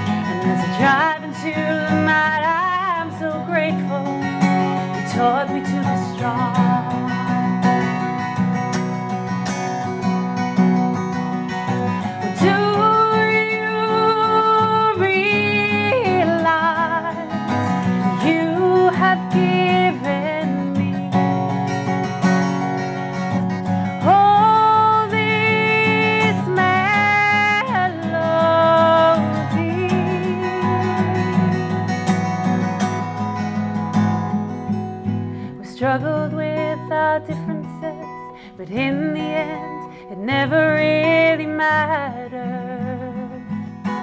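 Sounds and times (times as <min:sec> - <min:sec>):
woman singing: 0:00.0 - 0:08.4, 0:11.8 - 0:22.6, 0:23.7 - 0:32.8, 0:35.0 - 0:44.0
strummed acoustic guitar: 0:00.0 - 0:44.0.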